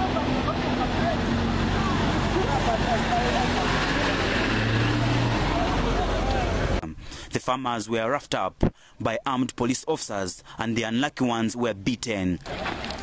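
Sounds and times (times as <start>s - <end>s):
faint crowd voices: 0.0s - 6.8s
vehicles passing: 0.0s - 7.4s.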